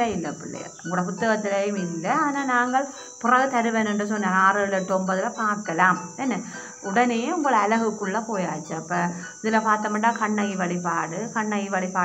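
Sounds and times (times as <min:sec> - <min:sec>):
high-pitched background hum: 0:00.0 - 0:12.0
woman speaking: 0:00.0 - 0:12.0.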